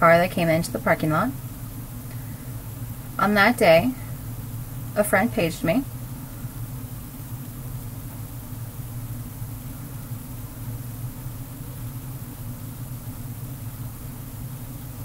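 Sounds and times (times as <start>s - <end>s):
light hiss: 0.0s - 15.0s.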